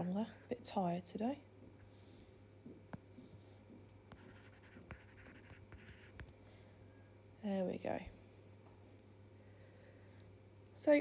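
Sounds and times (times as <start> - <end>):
low steady hum: 0.0 - 11.0
stylus tapping and scratching on screen: 4.1 - 6.4.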